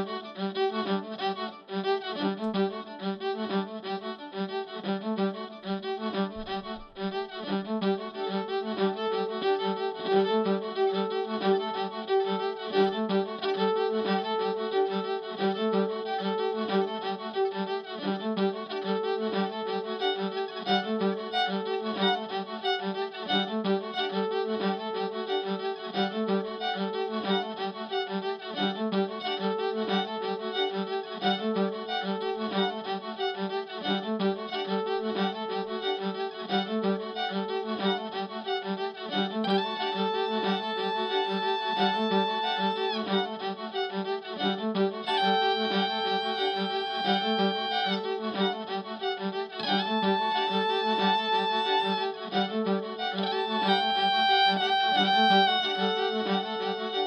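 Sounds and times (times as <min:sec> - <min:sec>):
fiddle through effects pedals: 0:00.0 - 0:57.0
steady pulsing figure: 0:37.9 - 0:57.0
high held fiddle note: 0:39.4 - 0:44.0, 0:45.0 - 0:57.0.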